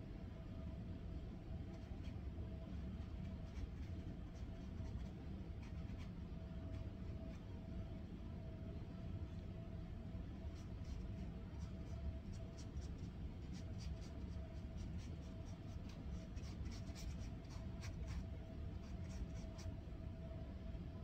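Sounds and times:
steady low hum: 0:00.0 - 0:21.0
paintbrush scratching on canvas: 0:01.7 - 0:07.5, 0:10.4 - 0:19.8.

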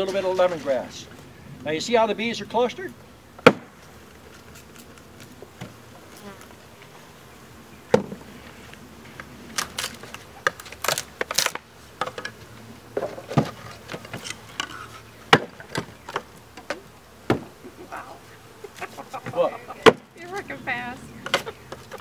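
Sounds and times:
honeybees buzzing: 0:00.0 - 0:22.0.

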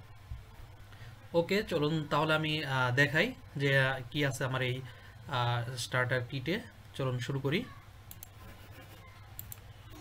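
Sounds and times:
man talking: 0:01.4 - 0:07.8
computer mouse clicks: 0:08.1 - 0:08.5, 0:09.3 - 0:09.7.

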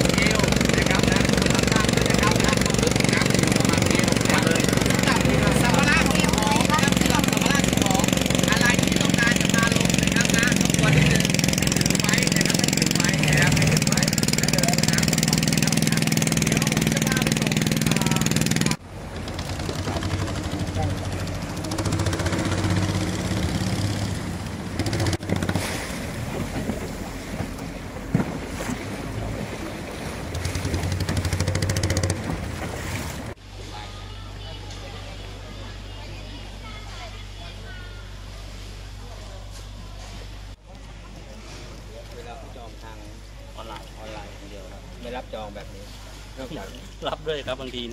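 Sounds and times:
people's voices: 0:00.0 - 0:18.8, 0:33.4 - 0:47.9
boat engine running: 0:00.0 - 0:47.9.

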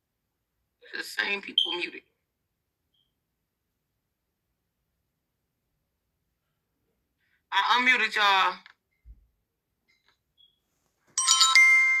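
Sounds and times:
electronic chime jingle: 0:11.2 - 0:12.0.

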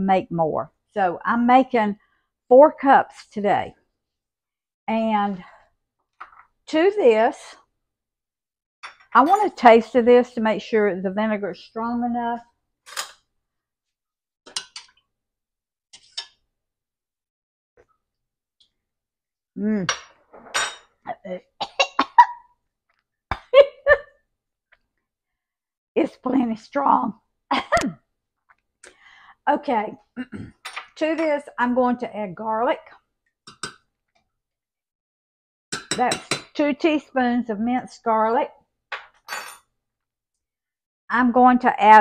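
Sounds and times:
glass and kitchen things clinking: 0:19.9 - 0:20.9, 0:39.3 - 0:39.7.

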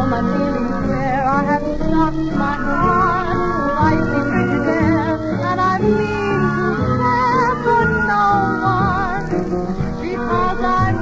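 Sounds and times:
dance orchestra playing: 0:00.6 - 0:11.0.

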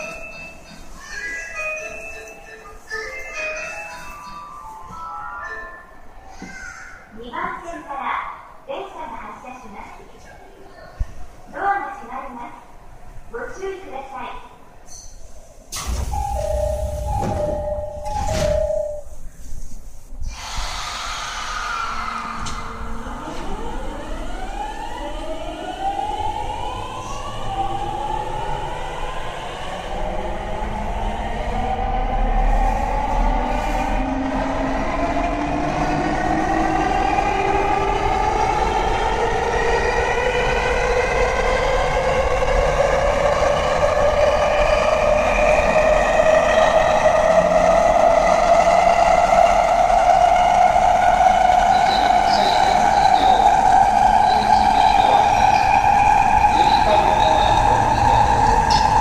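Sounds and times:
train inverter whining: 0:15.7 - 0:19.3, 0:20.3 - 0:59.0.

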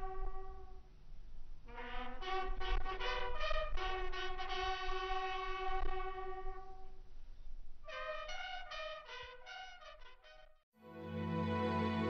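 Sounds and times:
bugle call: 0:00.0 - 0:00.8, 0:07.9 - 0:10.5.

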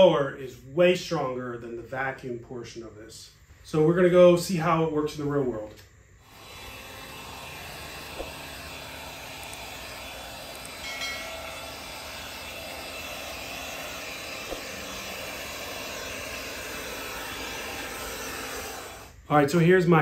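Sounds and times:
faint motor whine: 0:04.8 - 0:19.6
leaf blower air rush: 0:06.2 - 0:19.6.

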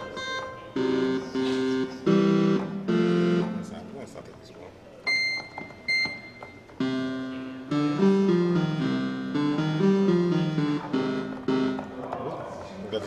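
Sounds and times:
synthesizer held chord: 0:00.0 - 0:04.1, 0:06.8 - 0:12.1
synthesizer tune: 0:00.0 - 0:04.2, 0:05.1 - 0:12.2.

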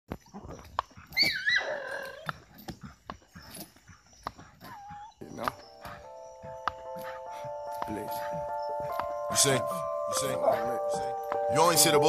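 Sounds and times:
dog whining: 0:01.0 - 0:02.4, 0:04.4 - 0:06.0.

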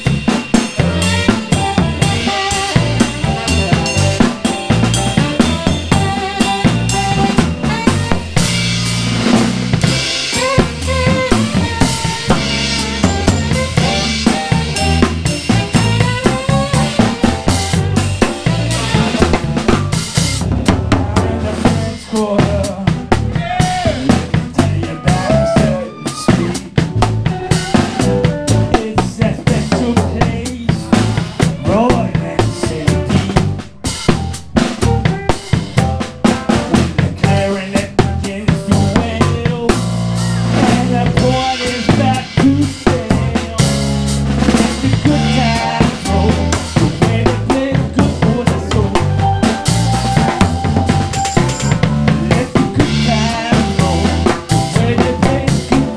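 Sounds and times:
cymbals: 0:00.0 - 0:20.6, 0:29.5 - 0:55.9
bass drum: 0:00.0 - 0:55.9
live band playing a groove: 0:00.0 - 0:55.9.

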